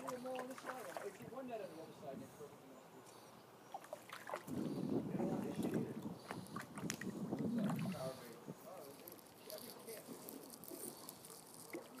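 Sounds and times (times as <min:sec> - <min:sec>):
brook trickling and gurgling: 0:00.0 - 0:12.0.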